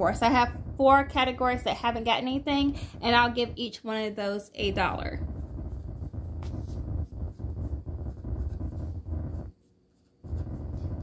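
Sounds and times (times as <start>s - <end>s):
low steady hum: 0.0s - 11.0s
pen scratching on paper: 5.4s - 11.0s.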